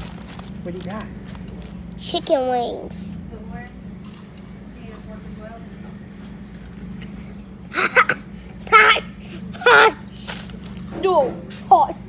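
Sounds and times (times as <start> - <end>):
low room hum: 0.0 - 12.0
child crying out: 7.8 - 10.1.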